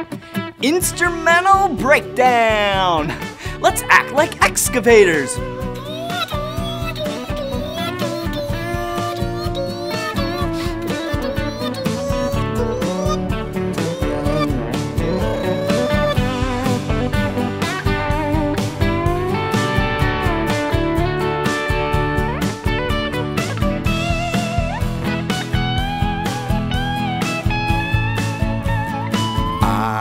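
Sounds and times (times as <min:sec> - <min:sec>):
lead guitar bending notes: 0:00.5 - 0:29.7
steady drum beat: 0:00.9 - 0:06.0.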